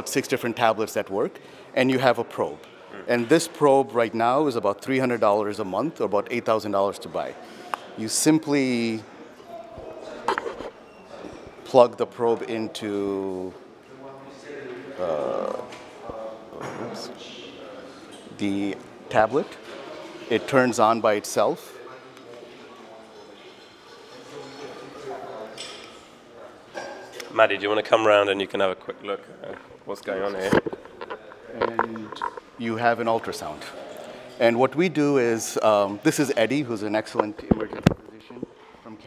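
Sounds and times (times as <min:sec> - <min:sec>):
faint distant voices: 0:06.0 - 0:27.4.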